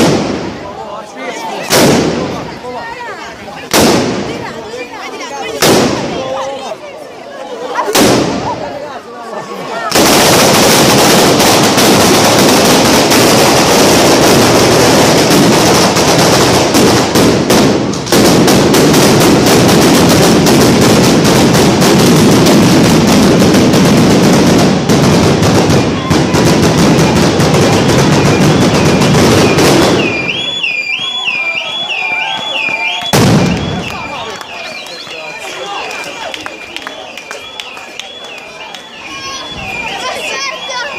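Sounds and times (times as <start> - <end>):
firecrackers crackling: 0.0 - 0.8, 1.6 - 6.5, 7.8 - 8.8, 9.8 - 40.9.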